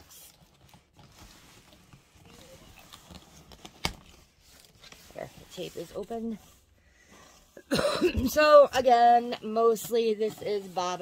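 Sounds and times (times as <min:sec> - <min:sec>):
packing tape scraping and rustling: 0:00.0 - 0:06.7.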